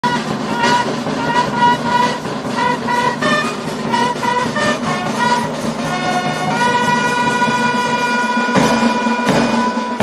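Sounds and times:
bass drum: 0.0 - 10.0
snare drum: 0.0 - 10.0
trumpets playing a melody: 0.0 - 10.0.

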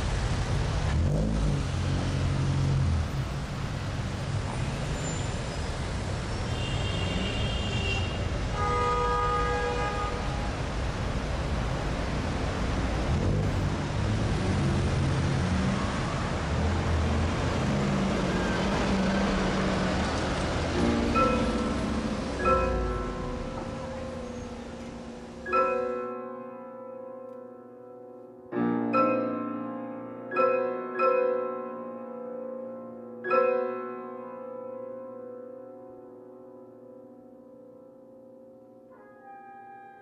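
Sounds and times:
traffic engines rumbling: 0.0 - 26.1
car horns: 6.4 - 10.7, 39.0 - 40.0.

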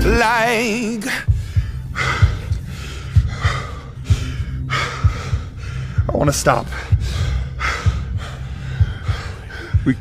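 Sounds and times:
dull low thumps: 1.2 - 10.0
person panting hard: 1.3 - 6.1, 6.7 - 10.0.

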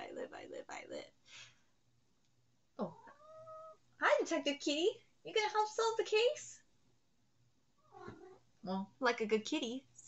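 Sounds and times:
cat meowing: 2.8 - 3.8, 7.8 - 8.4.

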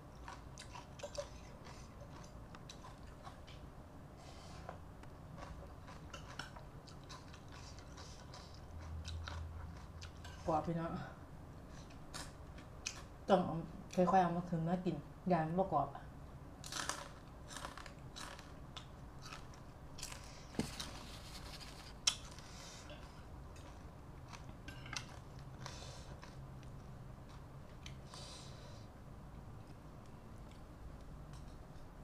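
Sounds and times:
person chewing food: 0.0 - 10.5, 16.6 - 28.4
close chewing: 0.1 - 3.7, 4.6 - 10.4.

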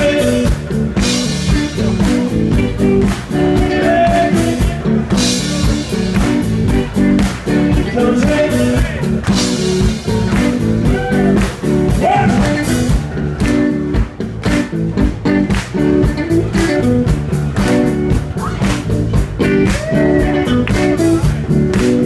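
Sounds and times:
blues band playing: 0.0 - 22.0
electric guitar: 0.0 - 22.0.

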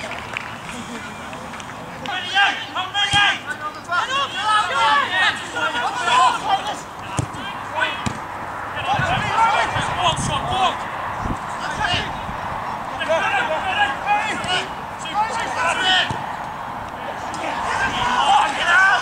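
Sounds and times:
footballers shouting: 0.5 - 19.0
ball being kicked: 7.1 - 7.4, 8.0 - 8.3.

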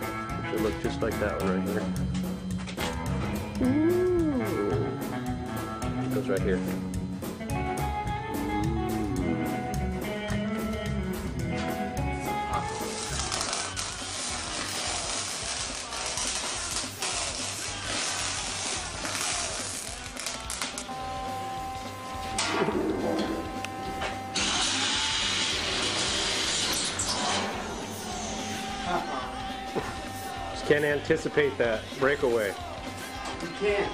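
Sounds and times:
background music: 0.0 - 33.9.

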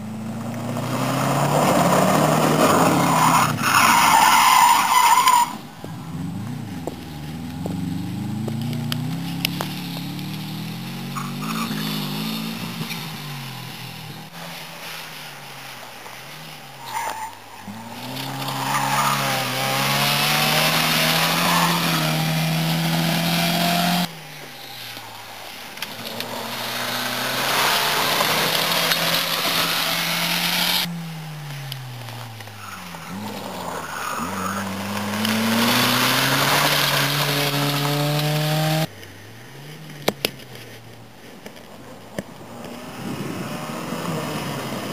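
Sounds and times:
rally car engines revving: 0.0 - 44.9
tyres on gravel: 0.0 - 44.9.

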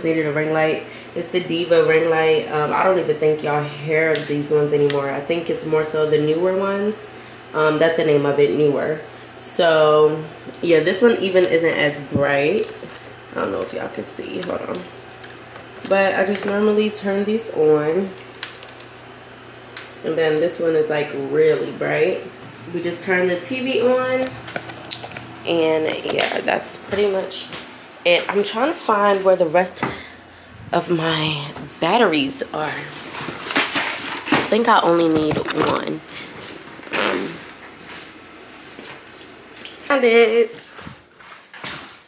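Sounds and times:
low steady hum: 0.0 - 41.9
handling and rummaging noise: 32.7 - 39.4.

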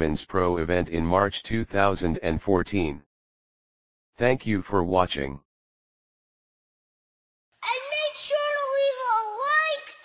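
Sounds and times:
high-pitched child-like voice: 7.6 - 10.0.

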